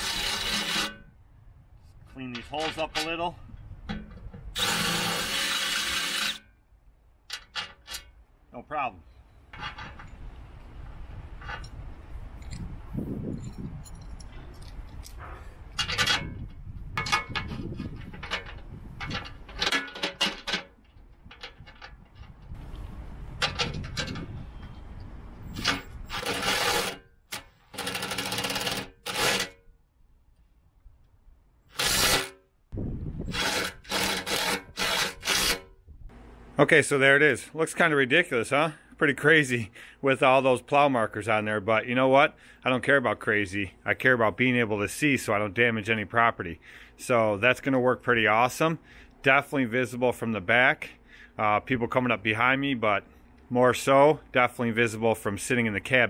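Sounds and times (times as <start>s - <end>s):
scraping and handling noises: 2.1s - 3.3s
cordless impact driver running bolts: 4.6s - 6.4s, 25.6s - 29.4s, 31.7s - 32.3s, 33.3s - 35.6s.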